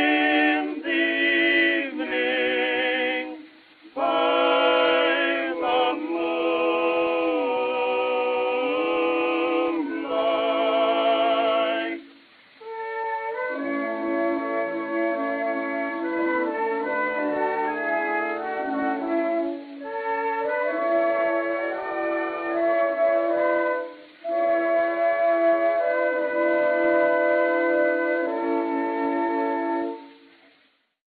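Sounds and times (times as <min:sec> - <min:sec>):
wind and brass notes on old recording: 0:00.0 - 0:31.0.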